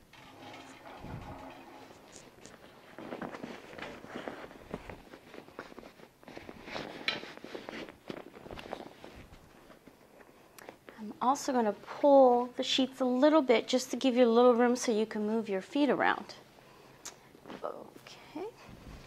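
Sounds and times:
bed sheet rustling: 2.6s - 9.9s.

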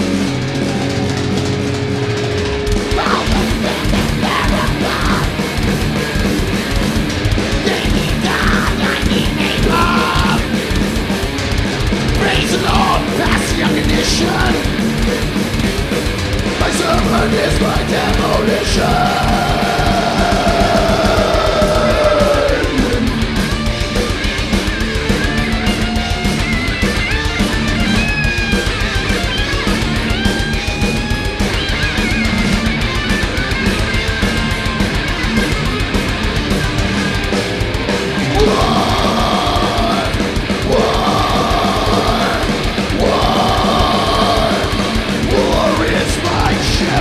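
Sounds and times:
distorted electric guitars: 0.0s - 47.0s
fast driving drums: 0.0s - 47.0s
singer shouting: 2.9s - 5.4s, 7.6s - 10.6s, 12.2s - 14.8s, 16.6s - 23.1s, 38.2s - 47.0s.

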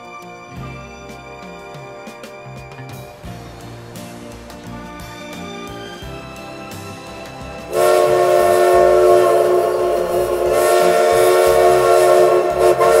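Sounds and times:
train horn blast: 7.7s - 13.0s.

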